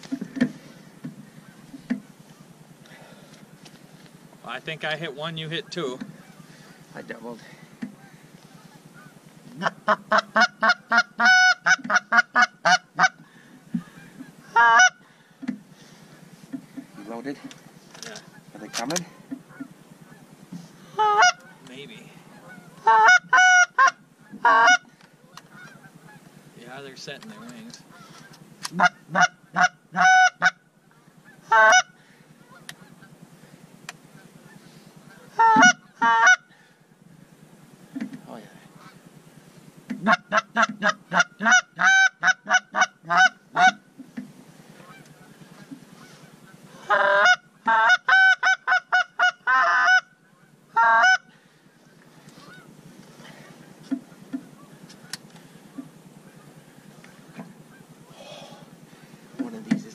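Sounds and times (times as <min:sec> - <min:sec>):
goose call honks: 0:04.5 - 0:15.1, 0:17.4 - 0:26.4, 0:27.3 - 0:33.3, 0:34.1 - 0:36.7, 0:38.7 - 0:39.2, 0:39.9 - 0:44.0, 0:44.7 - 0:58.8
goose call clucks: 0:04.6 - 0:15.1, 0:15.8 - 0:26.5, 0:27.2 - 0:36.7, 0:37.4 - 0:59.9.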